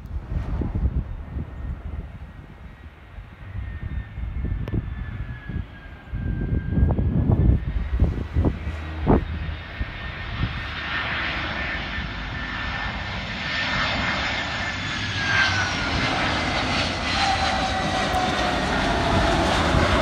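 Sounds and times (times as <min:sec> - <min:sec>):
jet airliner engine whine: 0:00.0 - 0:20.0.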